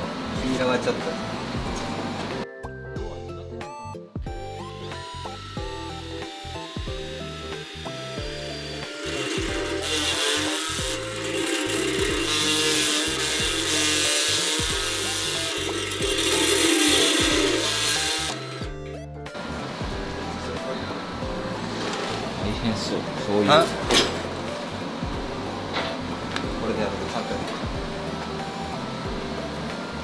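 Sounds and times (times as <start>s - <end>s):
background music with bass: 0.0s - 30.0s
rotary tool grinding metal: 4.8s - 18.7s.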